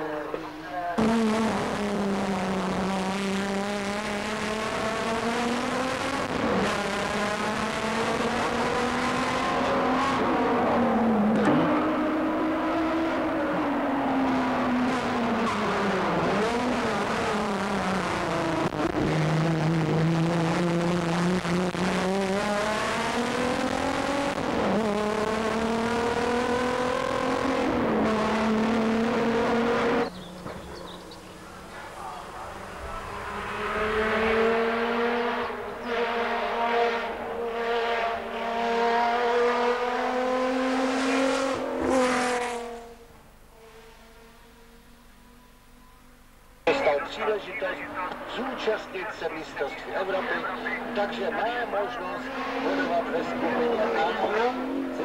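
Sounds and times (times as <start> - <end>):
race car engine revving: 0.0 - 45.4, 46.6 - 55.0.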